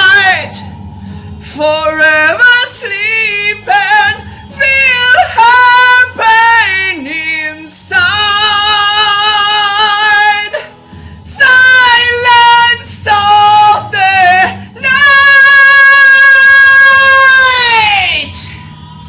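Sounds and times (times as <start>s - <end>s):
man singing power metal: 0.0s - 0.7s, 1.4s - 10.7s, 11.3s - 18.6s.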